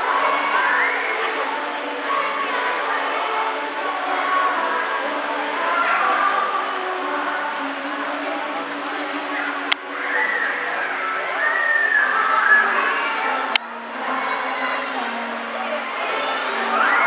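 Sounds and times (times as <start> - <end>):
children's choir singing: 0.0 - 17.0.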